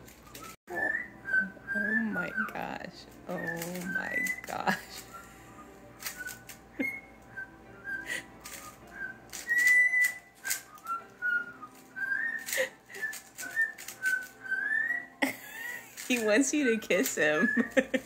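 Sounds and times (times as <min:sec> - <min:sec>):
cockatiel whistling: 0:00.2 - 0:15.2, 0:17.2 - 0:18.0
sharp clicks: 0:08.4 - 0:11.0.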